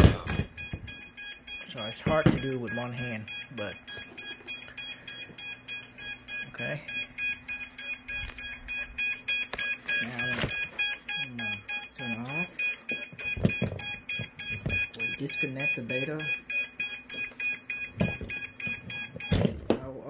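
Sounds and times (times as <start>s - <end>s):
rapid high motor beeps: 0.0s - 19.5s.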